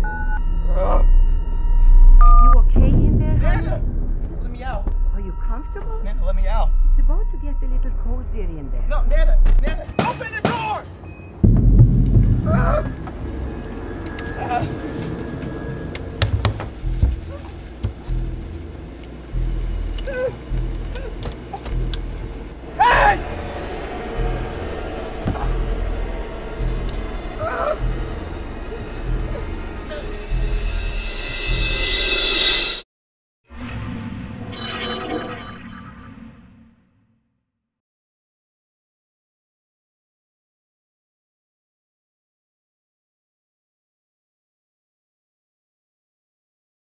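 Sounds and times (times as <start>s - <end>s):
tense film score: 0.0s - 32.8s
man crying and groaning: 0.6s - 1.2s, 12.4s - 13.0s, 20.0s - 21.7s, 22.6s - 23.4s, 27.2s - 30.2s
low drone: 11.4s - 32.8s.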